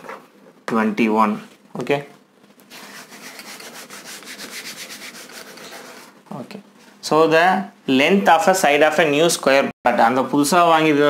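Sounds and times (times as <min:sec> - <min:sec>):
wiping chalk off blackboard: 0:02.6 - 0:06.2.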